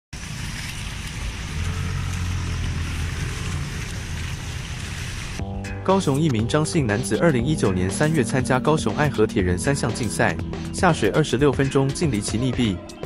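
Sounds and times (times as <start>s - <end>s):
rushing noise: 0.2s - 5.4s
low motor drone: 0.2s - 5.6s
background music: 5.4s - 13.0s.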